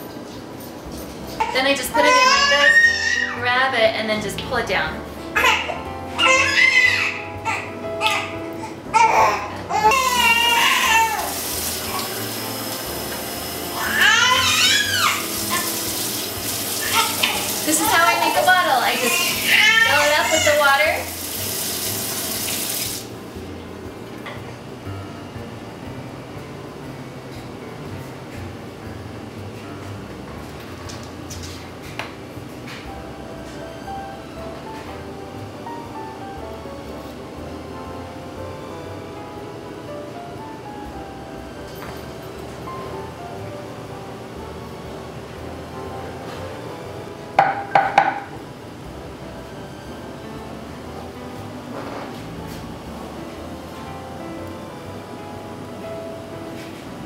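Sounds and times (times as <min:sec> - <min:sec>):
quiet background music: 0:00.0 - 0:57.0
tap running water into bottle: 0:21.2 - 0:23.1.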